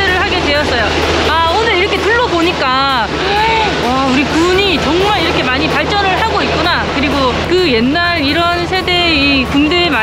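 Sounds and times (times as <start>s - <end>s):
woman speaking: 0.0s - 10.0s.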